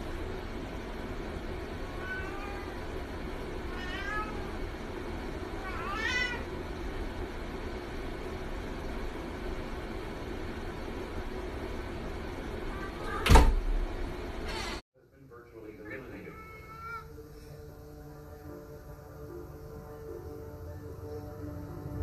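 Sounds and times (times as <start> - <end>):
steady low hum: 0.0 - 22.0
cat meowing: 1.9 - 2.9, 3.7 - 4.6, 5.6 - 6.5, 12.7 - 13.4, 15.8 - 17.2.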